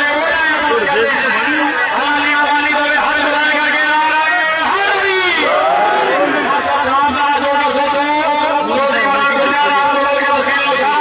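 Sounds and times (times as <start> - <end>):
man commentating: 0.0 - 11.0.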